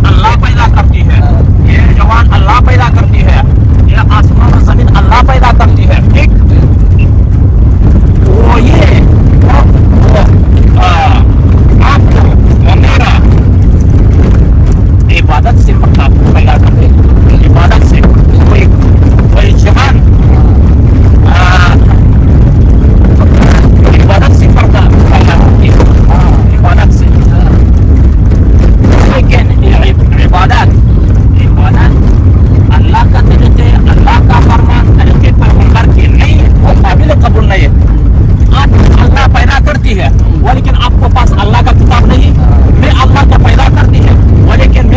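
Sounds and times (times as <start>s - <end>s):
men talking: 0.0s - 7.0s, 8.2s - 13.4s, 15.1s - 22.1s, 23.2s - 27.7s, 28.9s - 32.0s, 32.6s - 37.8s, 38.4s - 44.9s
car rumble from inside cabin: 0.0s - 44.9s.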